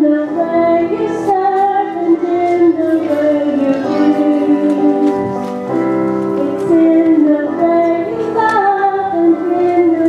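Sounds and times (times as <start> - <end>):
women singing slow song: 0.0 - 5.1, 6.4 - 10.0
instrumental accompaniment: 0.0 - 10.0.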